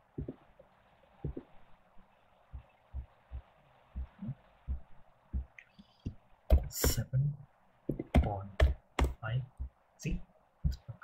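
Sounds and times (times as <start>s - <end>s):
faint steady hiss: 0.0s - 11.0s
soft muffled thumps: 0.2s - 0.4s, 1.2s - 1.6s, 2.5s - 7.0s.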